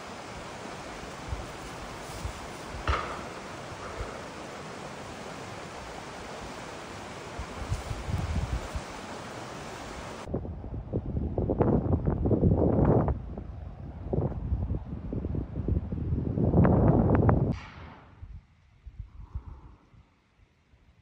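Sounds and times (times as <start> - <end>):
wind buffeting microphone: 0.0 - 19.9
steady wind hiss: 0.0 - 21.0.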